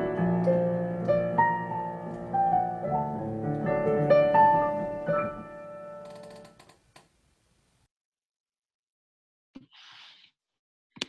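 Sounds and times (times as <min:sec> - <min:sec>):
piano chord: 0:00.0 - 0:06.0.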